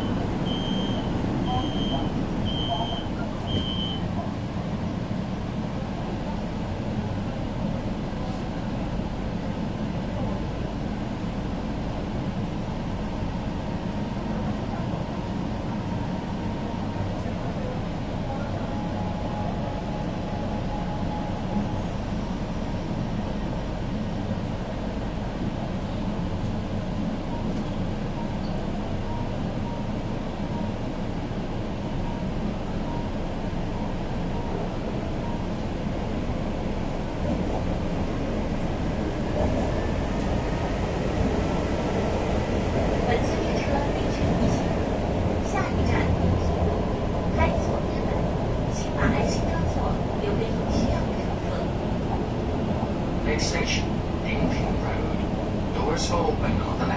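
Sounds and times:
subway train rumbling: 0.0 - 56.9.

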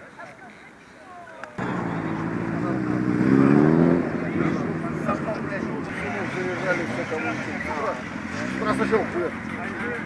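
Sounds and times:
people talking: 0.0 - 10.0
motorcycle engine revving: 1.6 - 10.0.

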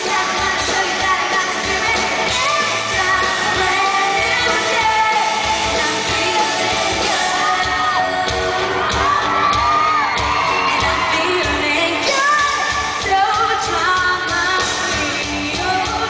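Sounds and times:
lead and group vocals singing: 0.0 - 9.4
guitars: 0.0 - 16.0
pop-rock band playing: 0.0 - 16.0.

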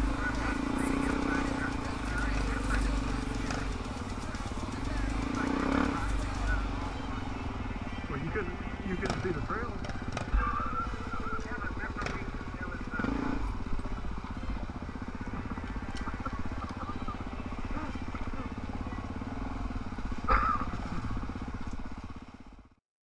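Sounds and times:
dirt bike engine running: 0.0 - 22.8.

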